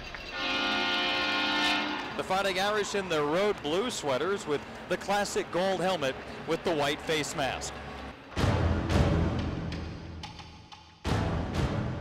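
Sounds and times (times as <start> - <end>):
loud horn chord: 0.3 - 2.2.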